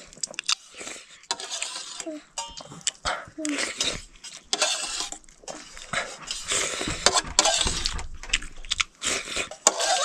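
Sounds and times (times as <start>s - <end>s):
chewing: 0.0s - 10.0s
spoon scraping steel bowl: 1.2s - 2.8s, 3.6s - 8.0s, 9.3s - 10.0s.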